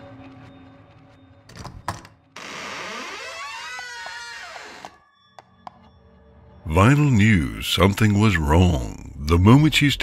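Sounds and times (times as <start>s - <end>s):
door creaking open: 1.5s - 5.1s.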